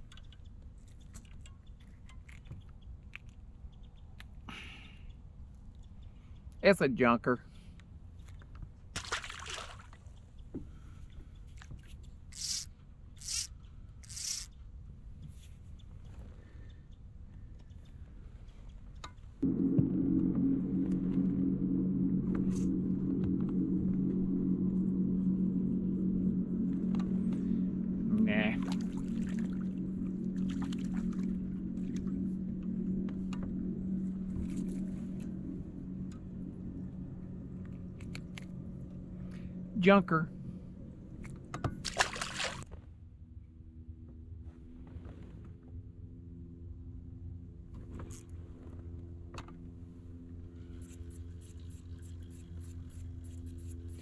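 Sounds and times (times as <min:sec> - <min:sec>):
boat motor humming: 0:12.1 - 0:14.9, 0:16.4 - 0:42.6, 0:43.2 - 0:54.0.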